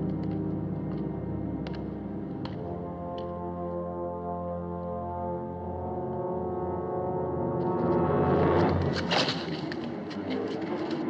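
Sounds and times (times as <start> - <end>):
low sustained brass chord: 0.0 - 9.6.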